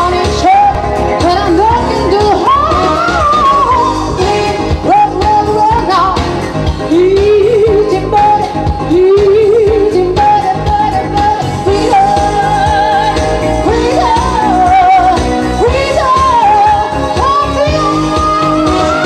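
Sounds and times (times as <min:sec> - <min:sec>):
woman singing with vibrato: 0:00.0 - 0:19.0.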